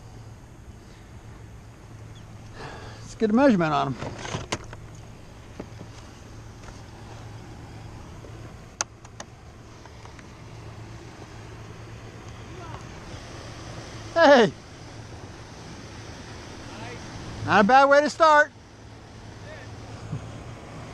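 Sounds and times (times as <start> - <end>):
motorboat engine drone: 0.0 - 20.9.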